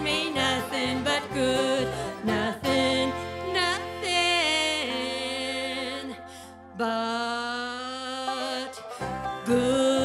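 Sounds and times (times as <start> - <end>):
gospel accompaniment chords: 0.0 - 6.7.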